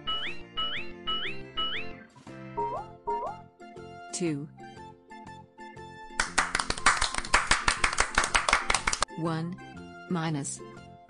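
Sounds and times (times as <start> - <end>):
faint background music: 2.1 - 11.0
hands clapping quickly: 6.1 - 9.1.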